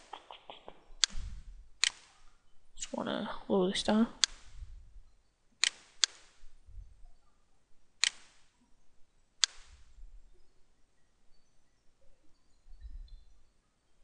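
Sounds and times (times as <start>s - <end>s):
computer mouse clicking: 0.0s - 2.2s, 4.2s - 4.5s, 5.6s - 6.3s, 8.0s - 8.4s, 9.4s - 9.8s.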